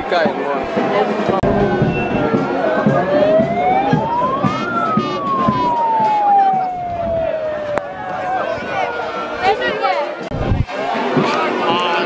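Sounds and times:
crowd voices and noise: 0:00.0 - 0:12.0
siren wailing: 0:00.7 - 0:10.6.

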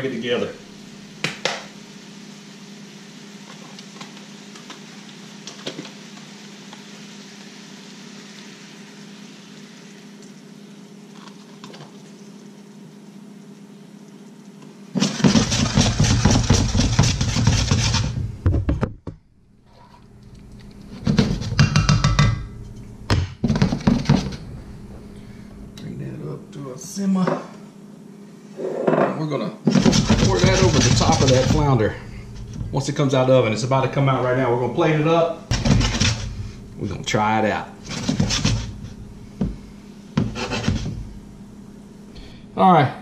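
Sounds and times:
sauce simmering with faint hiss: 0:00.0 - 0:18.4, 0:29.7 - 0:42.6
utensil stirring and clattering in pan: 0:15.0 - 0:18.7, 0:20.8 - 0:24.5, 0:29.6 - 0:33.0, 0:35.5 - 0:37.1, 0:37.8 - 0:41.2.

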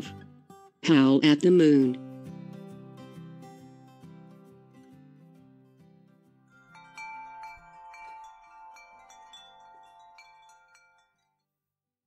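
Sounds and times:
soft chime tones: 0:06.5 - 0:11.4.

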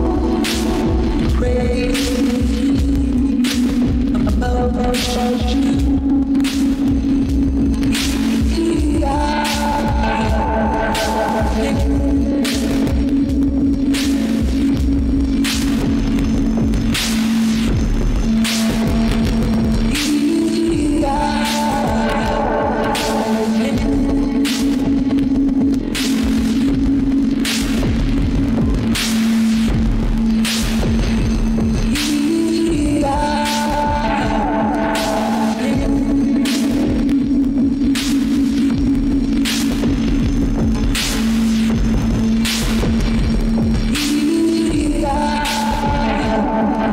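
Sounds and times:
modular synthesizer music: 0:00.0 - 0:46.9.

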